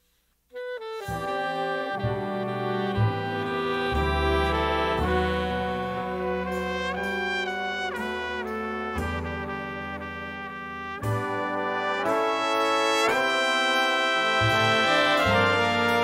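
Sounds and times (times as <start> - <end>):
brass section playing chords: 0.5 - 16.0
bass line: 0.6 - 16.0.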